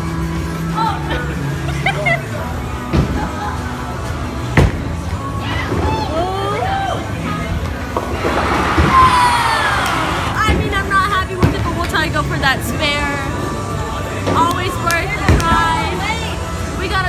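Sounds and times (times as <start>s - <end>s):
background music: 0.0s - 17.0s.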